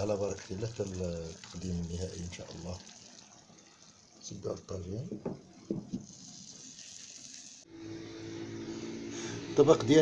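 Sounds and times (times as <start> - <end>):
faint steady hiss: 0.0 - 8.0.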